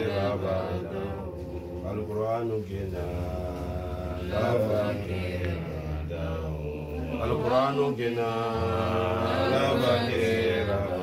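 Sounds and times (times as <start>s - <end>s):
person chanting recitation: 0.0s - 11.0s.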